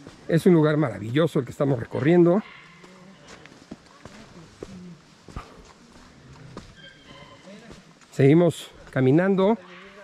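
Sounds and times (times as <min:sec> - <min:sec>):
footsteps on dirt and stones: 0:00.0 - 0:10.0.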